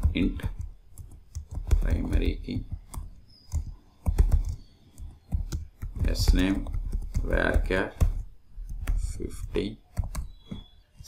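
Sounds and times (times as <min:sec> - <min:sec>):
typing on keyboard: 0:00.0 - 0:11.0.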